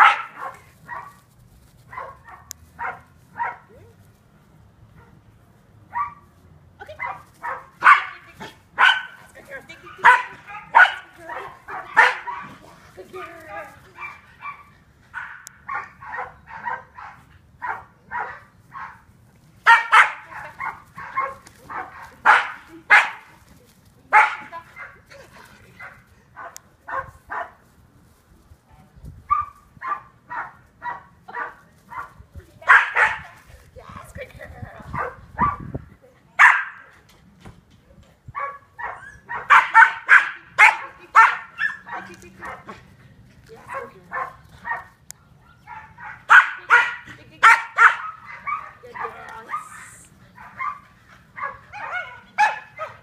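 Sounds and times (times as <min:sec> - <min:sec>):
dog barking sharply: 0:07.0 - 0:08.1, 0:36.4 - 0:36.8, 0:45.7 - 0:48.8.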